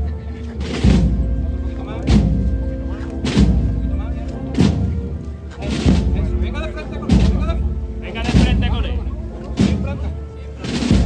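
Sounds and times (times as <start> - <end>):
held band notes: 0.0 - 11.0
voices: 0.0 - 11.0.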